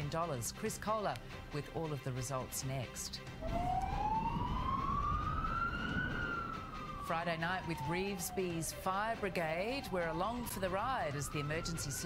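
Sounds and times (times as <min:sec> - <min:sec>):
fire truck siren wailing: 0:03.4 - 0:12.0.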